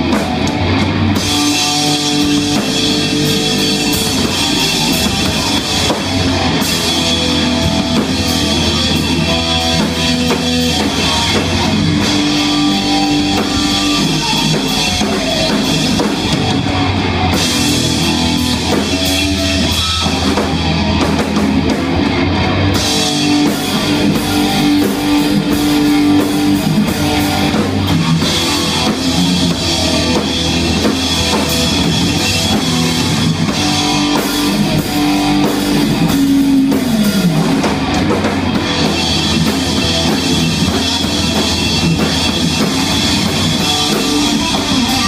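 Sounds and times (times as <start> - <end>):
distorted electric guitars and bass: 0.0 - 45.0
drum kit: 0.0 - 45.0.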